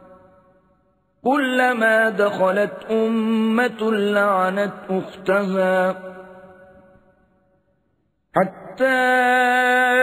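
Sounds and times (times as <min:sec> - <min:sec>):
man reciting in melodic chant: 0:00.0 - 0:07.2, 0:08.2 - 0:10.0.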